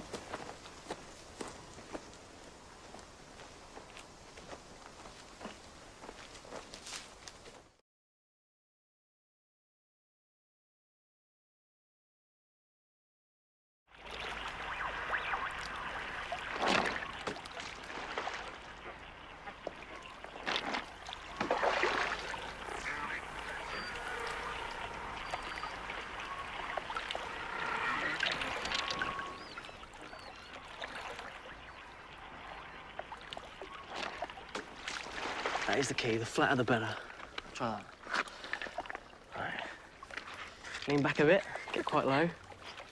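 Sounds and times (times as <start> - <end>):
lake water lapping on pebbles: 13.9 - 42.9
water splashes: 13.9 - 42.9.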